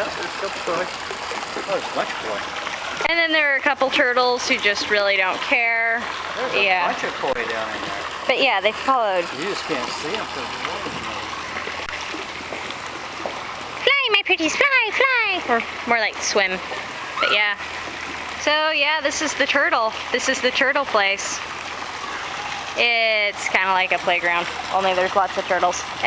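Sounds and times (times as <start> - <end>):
water splashing and churning: 0.0 - 26.0.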